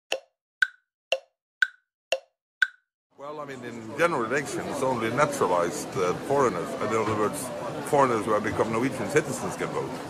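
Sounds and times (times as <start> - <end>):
alternating pitch clicks: 0.1 - 2.9.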